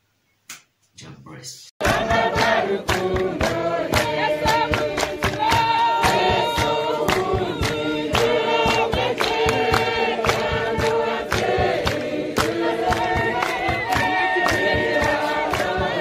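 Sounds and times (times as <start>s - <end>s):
choir singing: 1.8s - 16.0s
fast percussive beat: 1.8s - 16.0s.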